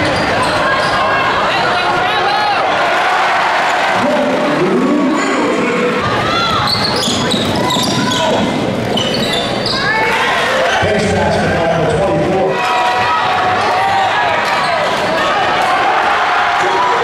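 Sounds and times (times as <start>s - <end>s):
sneakers squeaking: 0.0s - 1.3s, 6.1s - 10.2s
echoing voices: 0.0s - 17.0s.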